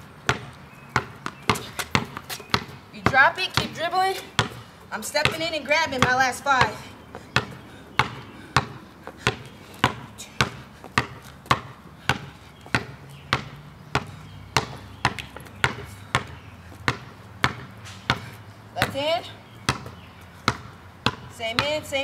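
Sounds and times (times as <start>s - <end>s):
basketball bouncing on concrete: 0.2s - 22.0s.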